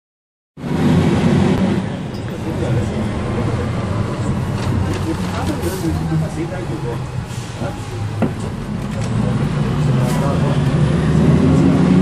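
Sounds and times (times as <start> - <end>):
bus engine and road rumble: 0.6 - 12.0.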